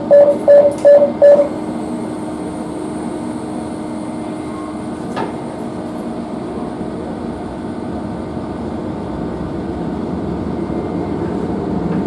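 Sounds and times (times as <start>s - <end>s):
short electronic beeps: 0.0s - 1.6s
train interior hum and rumble: 0.0s - 12.0s.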